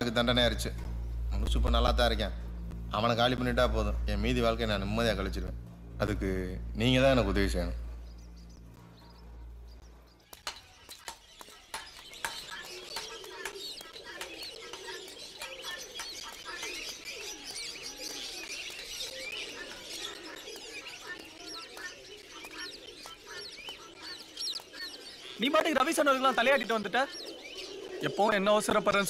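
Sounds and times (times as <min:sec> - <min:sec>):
low hum: 0:00.0 - 0:10.2
small birds chirping: 0:00.0 - 0:29.0
pigeons cooing: 0:10.6 - 0:29.0.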